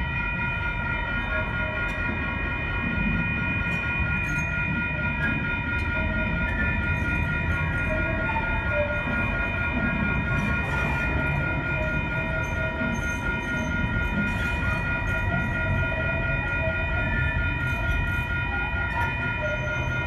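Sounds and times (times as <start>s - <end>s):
trains rolling past rumbling: 0.0s - 20.0s.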